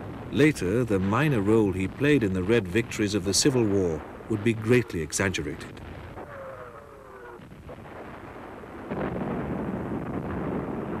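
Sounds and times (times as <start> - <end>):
shell explosion: 3.2 - 11.0.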